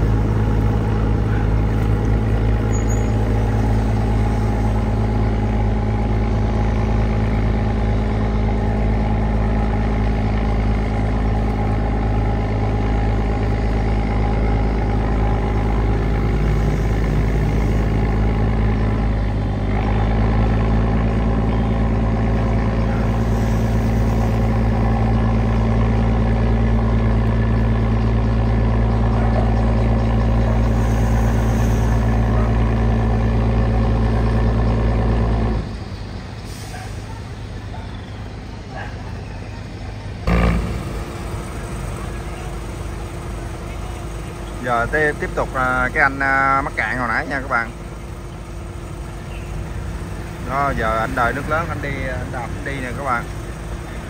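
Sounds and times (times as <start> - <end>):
diesel engine under heavy throttle: 0.0 - 54.0.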